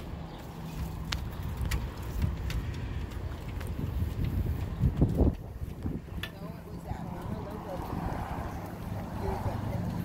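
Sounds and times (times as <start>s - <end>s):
steady low rumble: 0.0s - 10.0s
footsteps on grated bridge: 0.3s - 10.0s.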